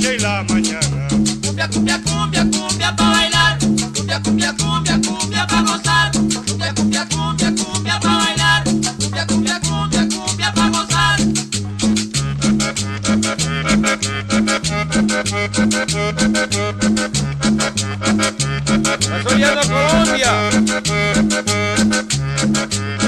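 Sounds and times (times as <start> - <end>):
cumbia dance music: 0.0 - 23.0.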